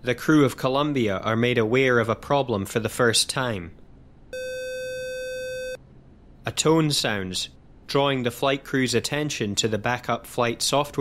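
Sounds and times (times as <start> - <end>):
steady electronic beep: 4.4 - 5.8.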